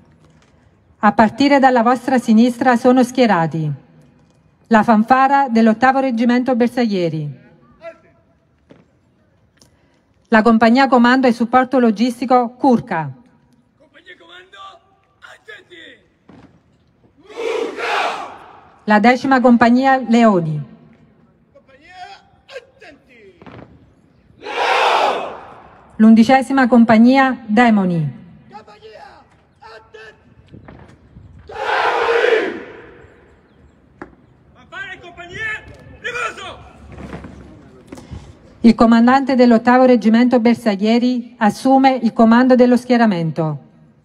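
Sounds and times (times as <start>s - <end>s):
soldiers shouting in unison: 17.2s - 18.8s, 24.4s - 25.7s, 31.5s - 33.0s.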